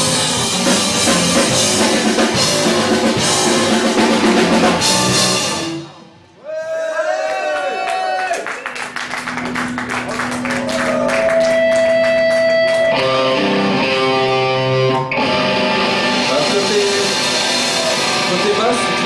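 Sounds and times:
drum and cymbal hits: 0.0 - 5.9, 16.0 - 19.0
live rock band playing: 0.0 - 6.1, 9.0 - 19.0
electric guitar chords ringing: 0.0 - 6.2, 9.3 - 19.0.

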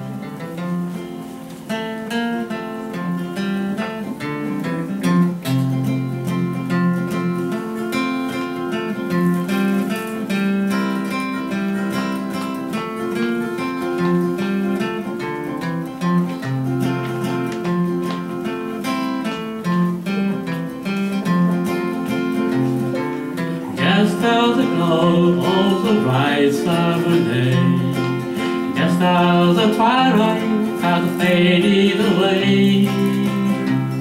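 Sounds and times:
acoustic guitar strumming: 0.0 - 34.0.

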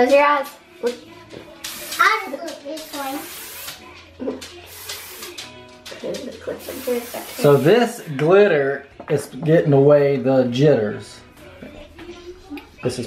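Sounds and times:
aerosol spray hissing: 1.6 - 3.8, 4.6 - 5.4, 6.6 - 8.1.

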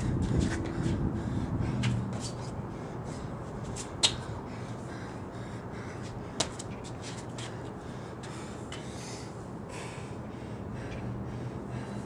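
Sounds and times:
man breathing hard: 0.0 - 3.6, 4.2 - 6.6, 7.4 - 12.0.

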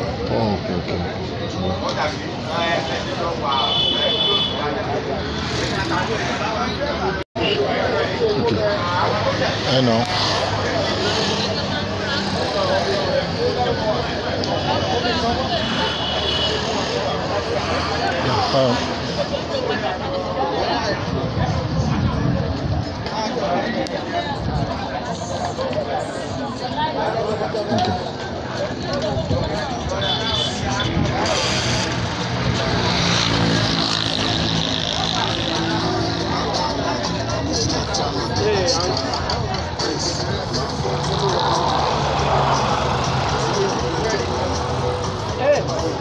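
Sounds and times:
people talking: 0.0 - 46.0.

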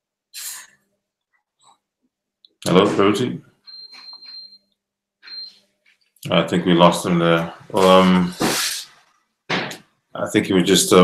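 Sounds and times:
garbled video call audio: 0.4 - 0.6, 2.5 - 4.6, 6.2 - 11.0.

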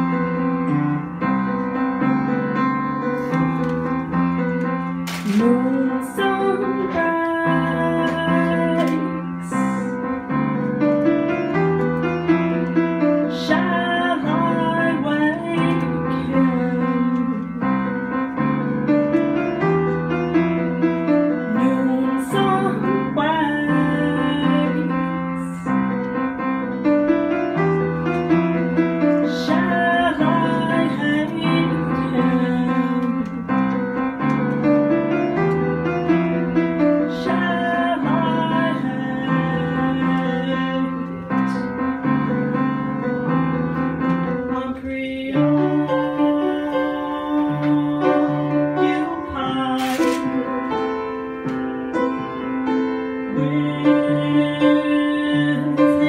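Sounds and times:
piano chords: 0.0 - 56.0
woman singing: 5.2 - 10.2, 13.0 - 18.5, 20.6 - 26.0, 28.6 - 34.0, 36.0 - 41.9, 44.3 - 51.3, 53.2 - 56.0.

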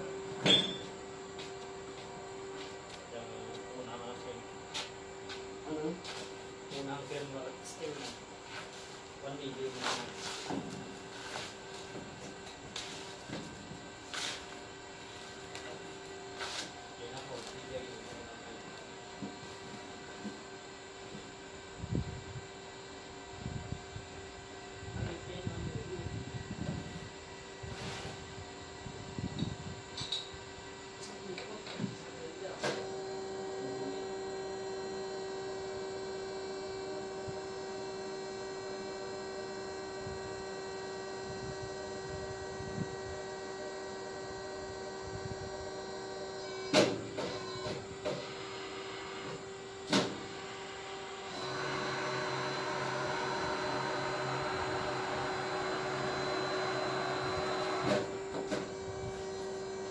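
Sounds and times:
sharp metallic knocks: 0.4 - 0.8
crimping machine pump hum: 30.6 - 59.9.

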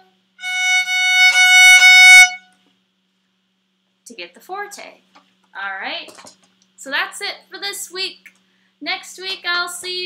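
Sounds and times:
violin sustained high note: 0.4 - 2.6.

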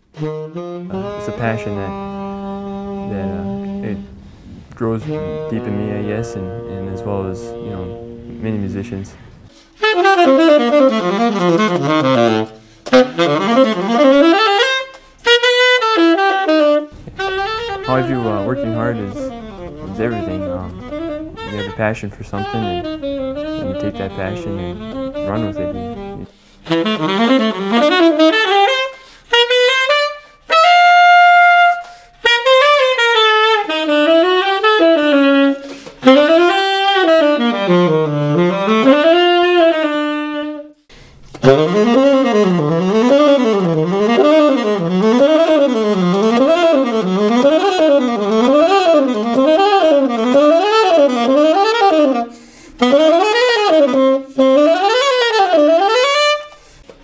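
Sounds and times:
tenor saxophone solo: 0.0 - 57.0
player breathing: 4.0 - 4.8, 9.1 - 9.8, 12.6 - 12.9, 26.2 - 26.7, 28.9 - 29.3, 35.6 - 36.0, 40.9 - 41.3, 52.3 - 52.8, 56.5 - 57.0.

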